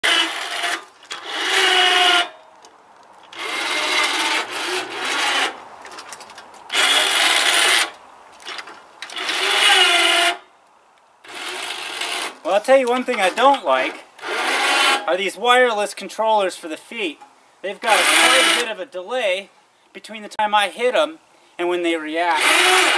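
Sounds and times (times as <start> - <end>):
electric winch motors whirring: 0.0 - 2.4, 3.3 - 5.6, 6.7 - 7.9, 9.0 - 10.4, 11.2 - 12.4, 14.2 - 15.0, 17.9 - 18.7, 22.3 - 22.9.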